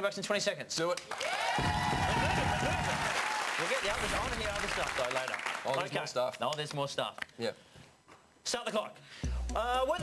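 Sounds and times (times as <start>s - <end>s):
audience applauding and cheering: 1.1s - 5.9s.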